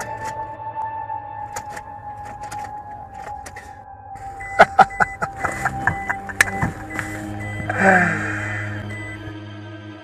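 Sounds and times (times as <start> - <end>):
car engine cranking and starting: 0.0 - 0.5, 1.4 - 9.4
background music: 0.0 - 10.0.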